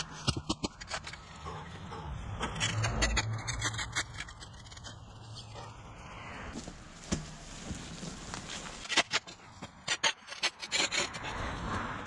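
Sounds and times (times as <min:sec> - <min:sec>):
metal spade digging soil: 0:02.4 - 0:05.5, 0:08.5 - 0:11.4.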